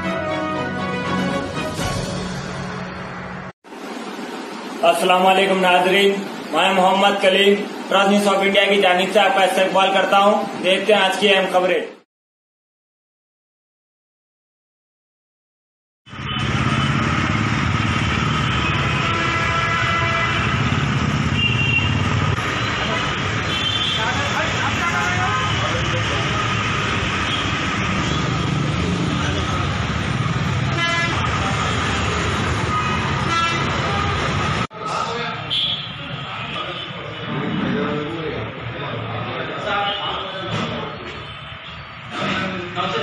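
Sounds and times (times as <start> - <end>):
street traffic: 0.0 - 12.1, 16.0 - 43.0
vehicle horns honking: 18.4 - 22.1, 22.8 - 28.4, 30.7 - 32.0, 32.6 - 34.4, 35.4 - 37.4, 39.7 - 40.6.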